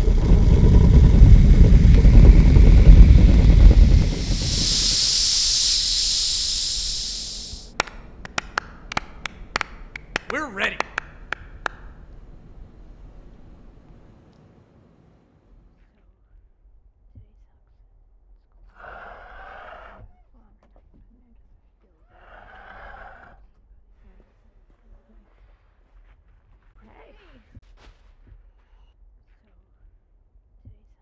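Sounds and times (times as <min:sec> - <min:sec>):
faint low rumble: 0:00.0 - 0:10.0
breathy exhalations: 0:03.0 - 0:13.7.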